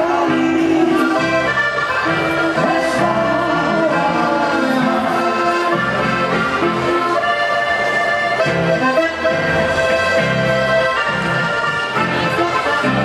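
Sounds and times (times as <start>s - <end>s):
accordion melody: 0.0s - 13.0s
strummed acoustic guitar: 0.0s - 13.0s
upright double bass: 0.0s - 13.0s.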